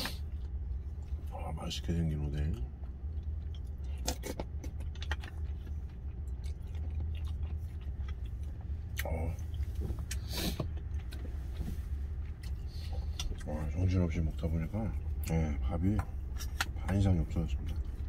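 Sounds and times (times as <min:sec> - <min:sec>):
chewing: 0:02.3 - 0:18.0.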